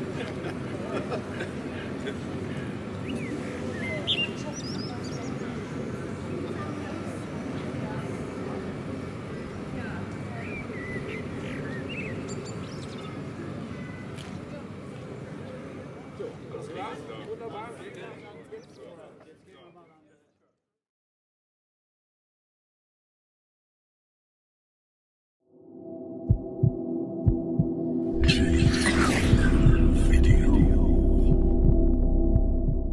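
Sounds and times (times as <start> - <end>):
murmur of voices: 0.0 - 20.2, 28.2 - 31.3
droning synth hum: 25.5 - 32.9
deep low heartbeat thumps: 26.2 - 32.9.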